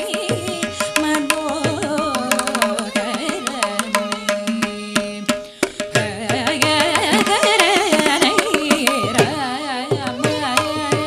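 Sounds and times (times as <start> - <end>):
violin: 0.0 - 11.0
woman singing classical song: 0.0 - 11.0.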